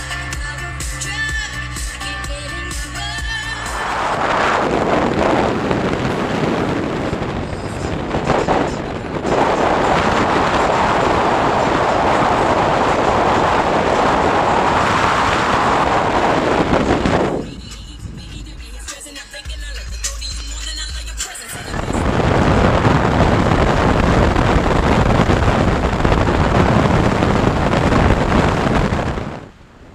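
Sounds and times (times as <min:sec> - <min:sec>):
music playing: 0:00.0 - 0:05.2, 0:15.6 - 0:22.6
wind rushing over microphone: 0:00.0 - 0:29.9.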